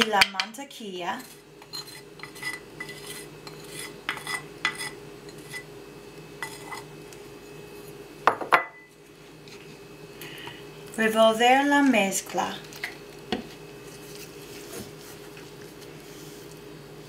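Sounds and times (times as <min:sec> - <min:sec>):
bowl scraping against bowl: 0:01.2 - 0:05.7, 0:06.4 - 0:06.9
dishes knocking and clinking: 0:08.3 - 0:08.9.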